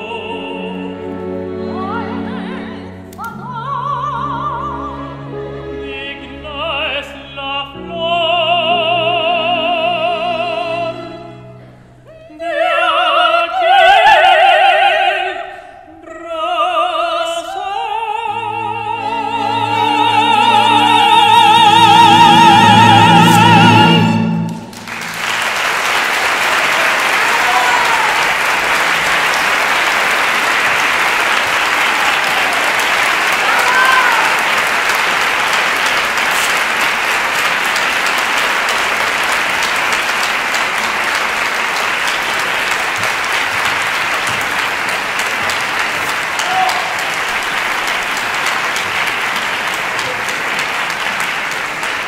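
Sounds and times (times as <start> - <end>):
operatic singing: 0.0 - 25.9, 26.6 - 52.0
audience applauding: 24.5 - 52.0.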